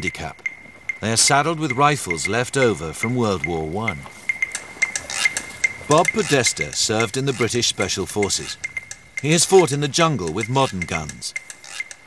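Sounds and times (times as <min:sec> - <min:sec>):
faint high ticking: 0:00.0 - 0:12.0.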